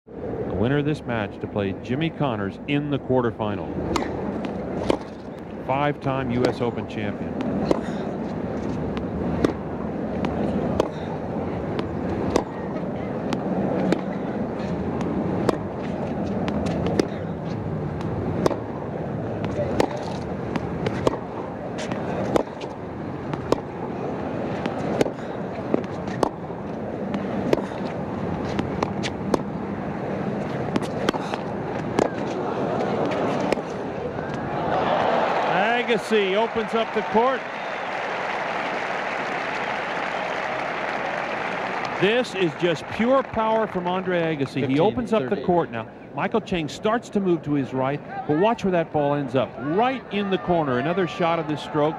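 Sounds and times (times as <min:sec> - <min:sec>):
tennis ball bouncing: 0:03.8 - 0:05.2, 0:06.0 - 0:34.6
tennis ball struck by racquets: 0:03.8 - 0:05.2, 0:06.3 - 0:06.7, 0:07.3 - 0:29.6, 0:30.2 - 0:34.4
crowd murmur: 0:04.0 - 0:28.7, 0:29.4 - 0:46.5.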